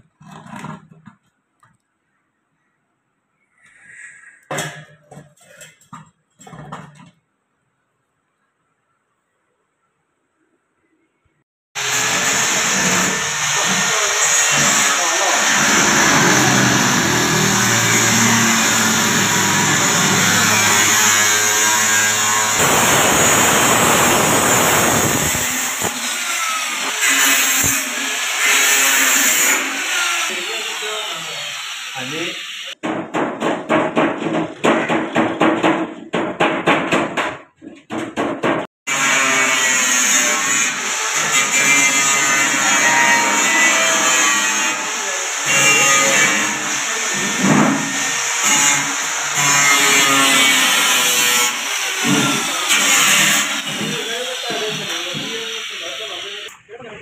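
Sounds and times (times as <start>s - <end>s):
angle grinder cutting sheet metal: 11.8s - 32.8s, 38.9s - 56.5s.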